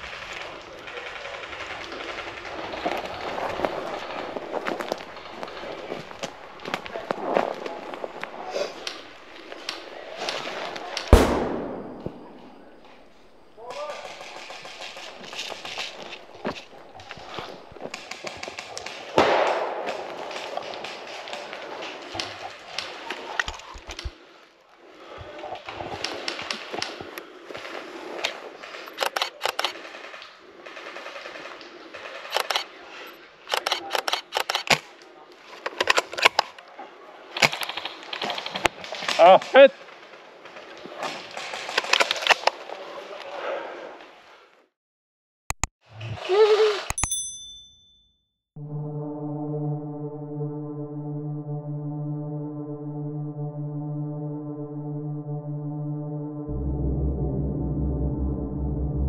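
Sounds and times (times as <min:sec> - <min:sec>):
loud sharp gunshot crack: 0:06.1 - 0:17.6, 0:19.0 - 0:21.8.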